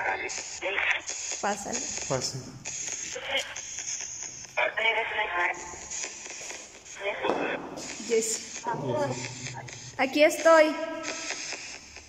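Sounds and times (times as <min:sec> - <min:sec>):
hiss: 0:00.0 - 0:04.2, 0:07.8 - 0:12.0.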